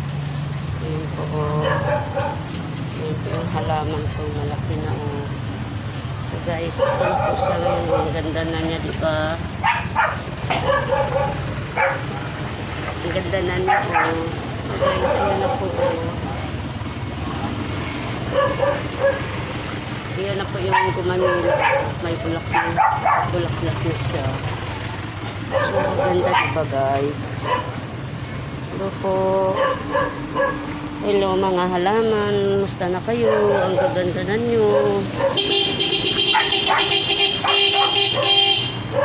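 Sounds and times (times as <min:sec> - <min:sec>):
dog barking: 0:01.6 - 0:02.5, 0:06.7 - 0:08.2, 0:09.6 - 0:12.2, 0:13.6 - 0:16.2, 0:18.3 - 0:19.4, 0:20.7 - 0:23.4, 0:25.5 - 0:26.7, 0:27.4 - 0:27.8, 0:29.5 - 0:30.7, 0:33.1 - 0:35.6, 0:36.2 - 0:39.0.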